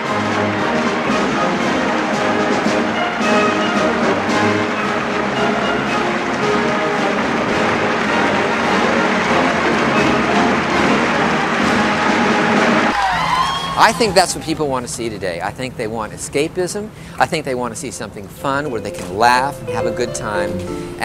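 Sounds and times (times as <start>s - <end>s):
brass band playing: 0.0s - 14.3s
man speaking outdoors: 13.8s - 21.0s.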